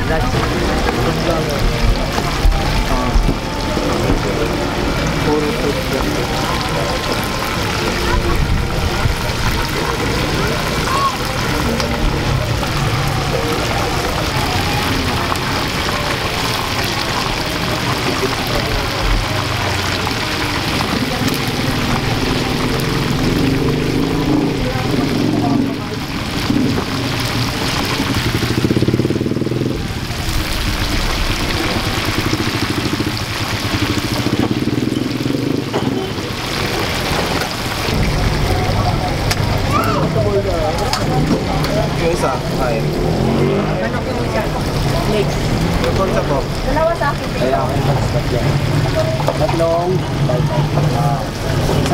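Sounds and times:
chicken deep-frying in oil: 0.0 - 51.9
voices of people: 0.0 - 51.9.

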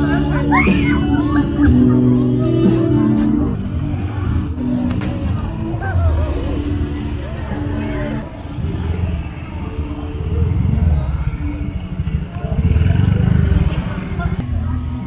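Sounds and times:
people's voices: 0.0 - 15.0
small motorcycle engine running: 8.2 - 14.4.

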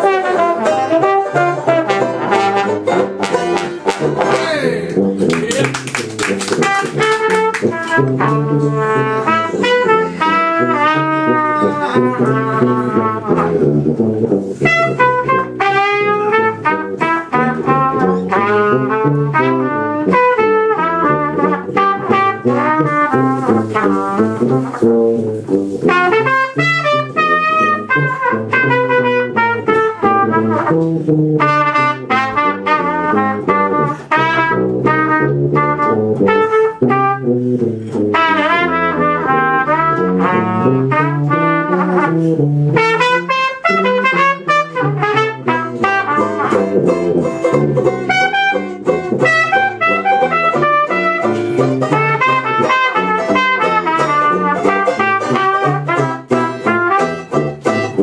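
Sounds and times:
jazz band playing live: 0.0 - 58.0
trumpet melody: 0.0 - 58.0
tuba bass line: 0.0 - 58.0.

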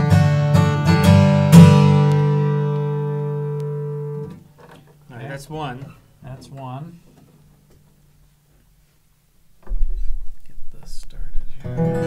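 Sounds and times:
acoustic guitar strummed chord: 0.0 - 4.4
low thump of handling: 9.6 - 11.0.

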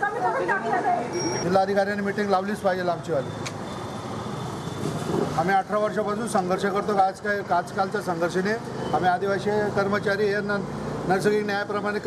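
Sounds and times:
background traffic noise: 0.0 - 12.0.

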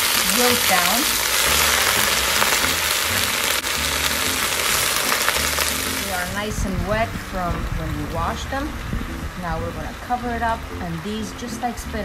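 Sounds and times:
leaves sizzling in hot oil: 0.0 - 11.8.

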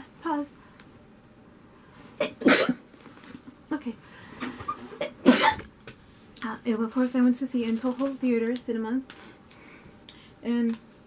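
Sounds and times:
woman sneezing: 2.2 - 2.8, 5.2 - 5.6.

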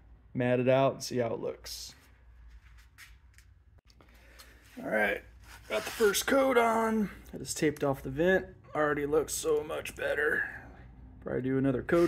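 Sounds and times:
man talking: 0.3 - 2.0, 4.8 - 12.0.

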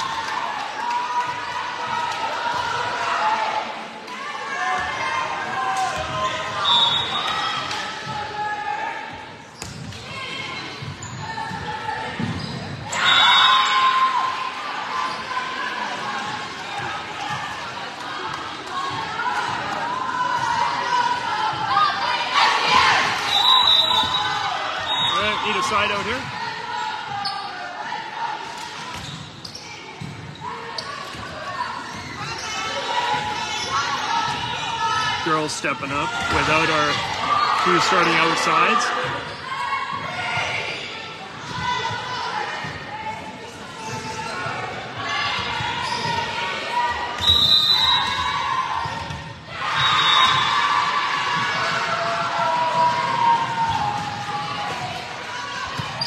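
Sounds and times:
voices echoing in gymnasium: 0.0 - 56.0.

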